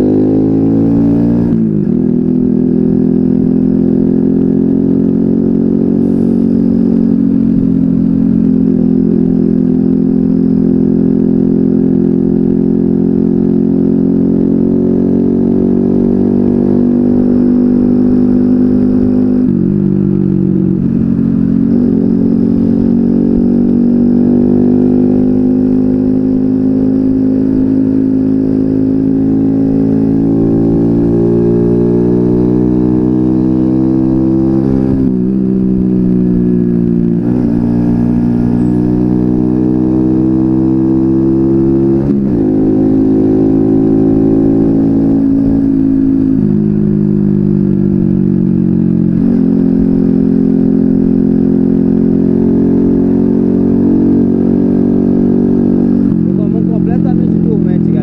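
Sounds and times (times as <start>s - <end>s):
moped engine running: 53.3s - 58.0s.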